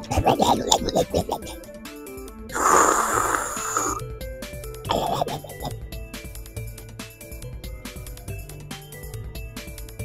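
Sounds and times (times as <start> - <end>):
background music: 0.0 - 10.0
loud slurp of noodles: 2.5 - 4.0.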